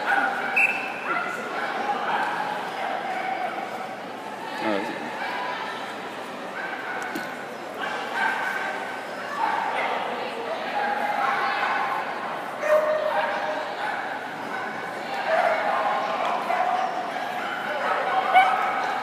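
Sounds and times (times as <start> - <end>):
murmur of voices: 0.0 - 19.0
dogs barking and yipping: 12.6 - 19.0.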